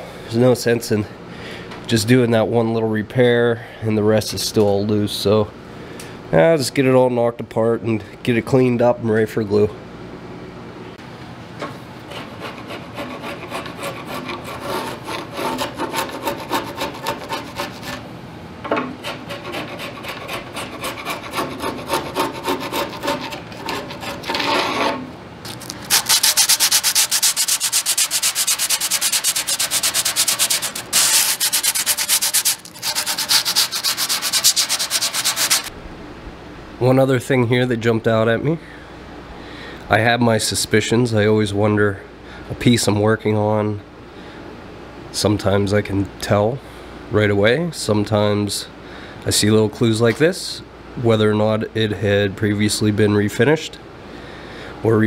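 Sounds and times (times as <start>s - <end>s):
hand sanding wood: 12.1s - 18.1s, 19.0s - 35.7s.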